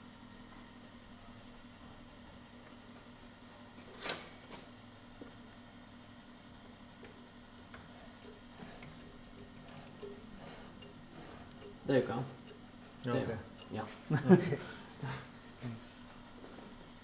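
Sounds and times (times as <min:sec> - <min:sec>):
enlarger humming: 0:06.4 - 0:17.0.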